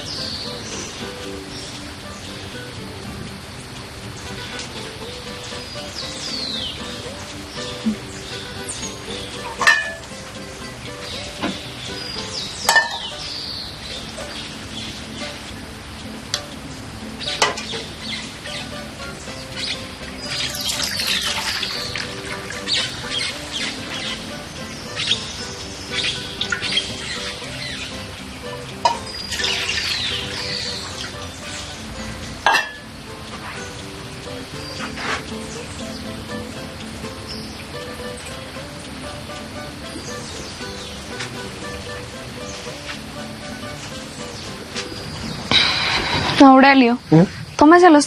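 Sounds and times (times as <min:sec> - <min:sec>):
birds chirping: 0:00.0 - 0:48.0
soft background music: 0:00.0 - 0:48.0
dishes clattering: 0:09.4 - 0:10.1, 0:12.6 - 0:13.2, 0:17.4 - 0:17.9, 0:28.8 - 0:30.6, 0:32.4 - 0:32.9, 0:45.4 - 0:46.6.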